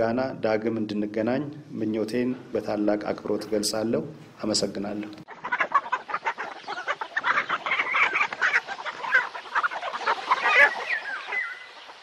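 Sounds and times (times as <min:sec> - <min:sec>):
flock of birds chirping: 0:00.0 - 0:12.0.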